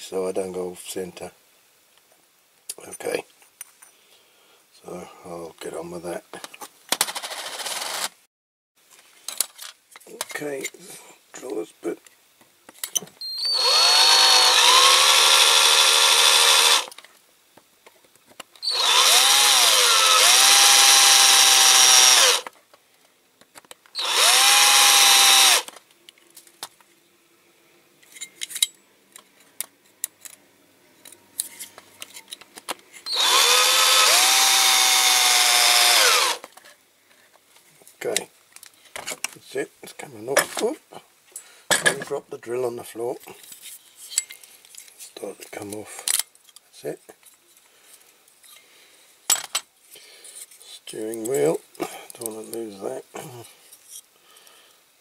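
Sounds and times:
small electric drill: 0:07.1 - 0:08.2, 0:13.2 - 0:17.0, 0:18.6 - 0:22.5, 0:23.9 - 0:25.8, 0:33.0 - 0:36.5.

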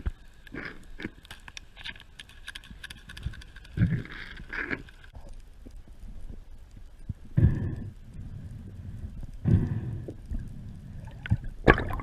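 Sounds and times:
steady low rumble: 0:03.4 - 0:12.0
water rushing underwater: 0:10.9 - 0:12.0.

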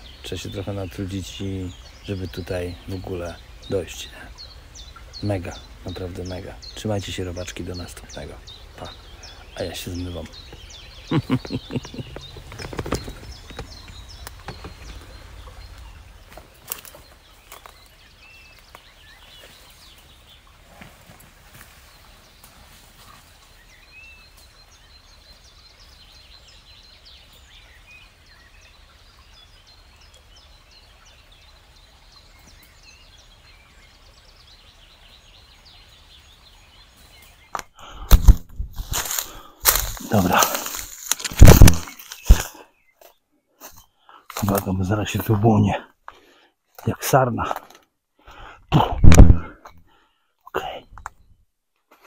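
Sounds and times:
faint bird chirps: 0:00.0 - 0:20.5
camera handling rustling and knocks: 0:11.4 - 0:15.2, 0:37.6 - 0:42.5.

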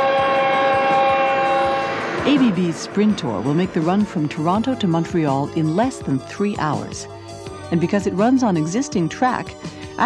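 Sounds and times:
train horn chord: 0:00.0 - 0:04.5
passing train rushing: 0:00.0 - 0:06.0.

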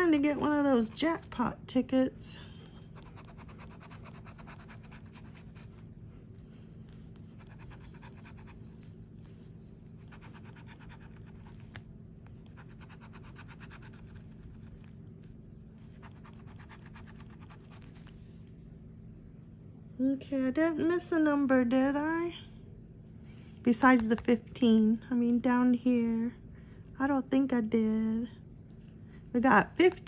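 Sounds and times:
low steady hum: 0:00.0 - 0:30.0
scratching lottery ticket coating: 0:03.0 - 0:05.8.

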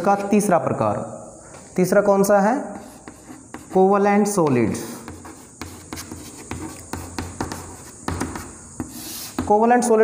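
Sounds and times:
chalk writing on chalkboard: 0:02.6 - 0:09.6.

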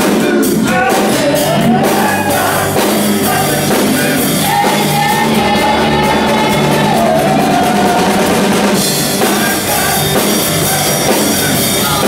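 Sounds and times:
drum kit: 0:00.0 - 0:12.0
electric bass: 0:00.0 - 0:12.0
rock band playing acoustic set: 0:00.0 - 0:12.0.

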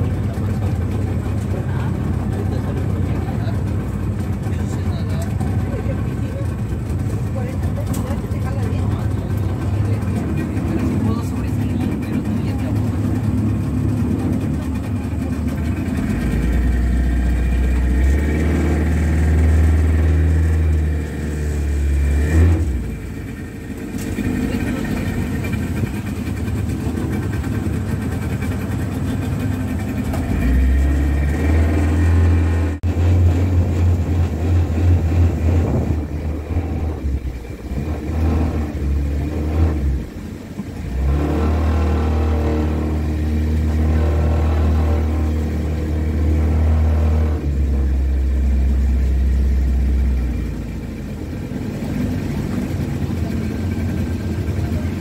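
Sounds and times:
motorboat engine running: 0:00.0 - 0:55.0.

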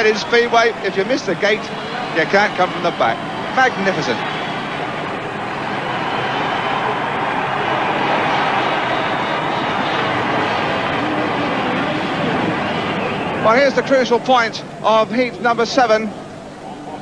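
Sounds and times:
motorcycles racing: 0:00.0 - 0:14.8.

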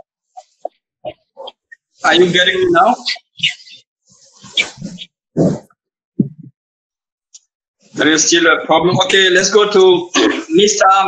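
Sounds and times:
garbled voice over video call: 0:00.4 - 0:03.8, 0:08.0 - 0:11.0.

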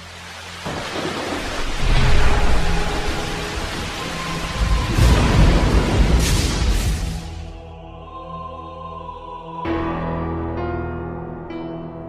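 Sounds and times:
steady rain: 0:00.0 - 0:07.6
rolling thunder: 0:00.7 - 0:07.4.

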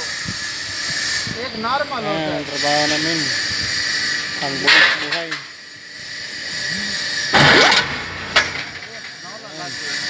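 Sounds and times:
electric hoist motor whining: 0:00.0 - 0:10.0.

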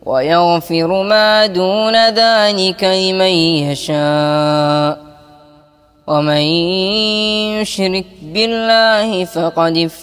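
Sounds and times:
boy chanting recitation: 0:00.0 - 0:10.0.

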